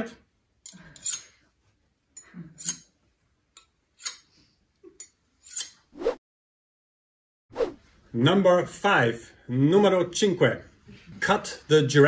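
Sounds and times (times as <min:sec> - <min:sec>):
knife scraping across stone: 0:05.0 - 0:05.9.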